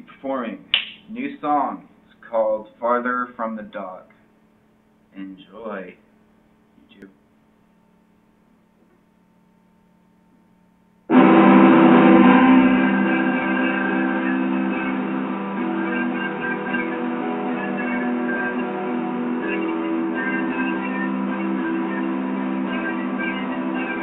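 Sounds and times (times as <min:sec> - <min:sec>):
sustained instrumental chord: 0:11.1 - 0:24.0.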